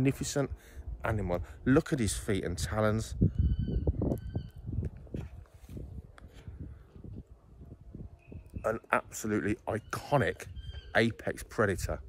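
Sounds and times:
wind rumble on microphone: 0:00.0 - 0:12.0
whistled bird calls: 0:03.4 - 0:04.7, 0:08.2 - 0:08.9, 0:09.7 - 0:11.0.

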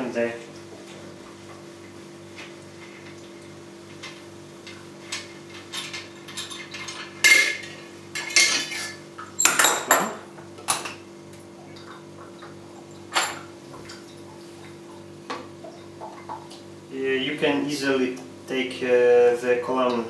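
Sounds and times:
copper pot clinking and clanking: 0:03.9 - 0:10.9, 0:13.1 - 0:13.5.

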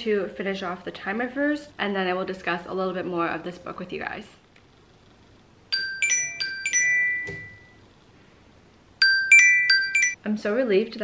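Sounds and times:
timer alarm chime tones: 0:05.7 - 0:07.8, 0:09.0 - 0:10.2.

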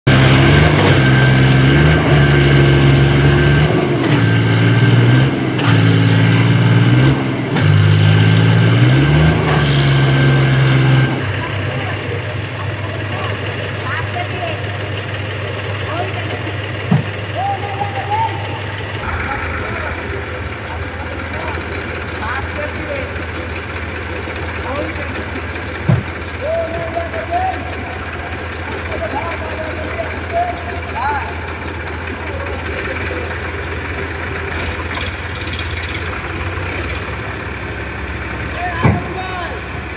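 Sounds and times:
tractor engine running hard: 0:00.0 - 0:39.9
tractor engine idling: 0:00.1 - 0:39.9
people's voices: 0:11.0 - 0:35.3, 0:36.0 - 0:39.9.

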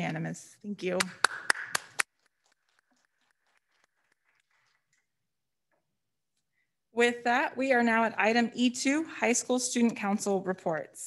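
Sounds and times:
hands clapping: 0:00.9 - 0:05.1.

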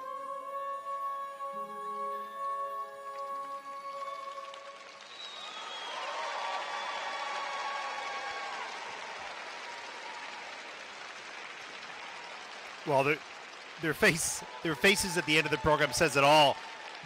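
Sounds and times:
music: 0:00.0 - 0:05.1
audience applauding: 0:03.1 - 0:17.0.

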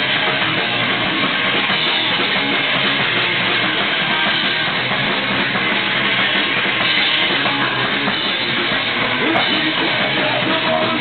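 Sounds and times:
live punk rock band: 0:00.0 - 0:11.0.

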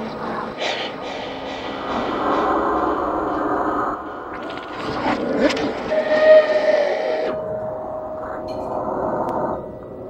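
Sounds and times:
breathy hiss: 0:00.6 - 0:04.3
voice holding long note: 0:05.8 - 0:08.5.

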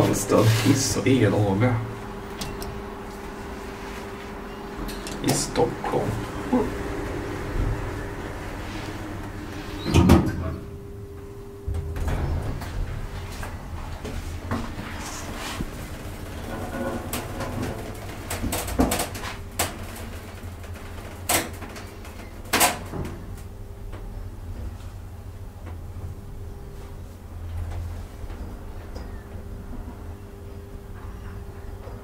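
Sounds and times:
elevator doors clunking and clicking: 0:00.0 - 0:03.4, 0:04.1 - 0:24.7
elevator hum: 0:00.0 - 0:32.0.

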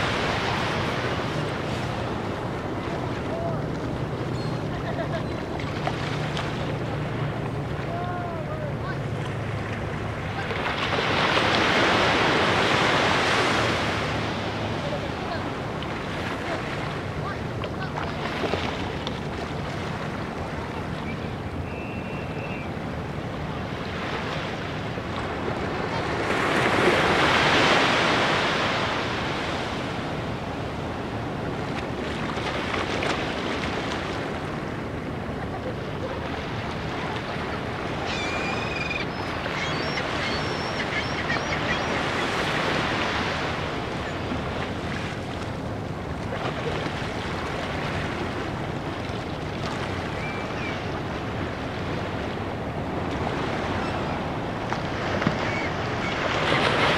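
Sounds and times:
waves washing onto sandy shore: 0:00.0 - 0:40.2, 0:40.8 - 0:56.9.

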